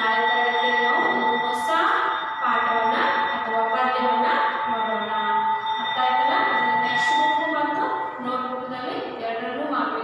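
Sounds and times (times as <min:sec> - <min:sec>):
faint high-pitched tone: 0:00.0 - 0:10.0
woman speaking sing-song: 0:00.0 - 0:10.0.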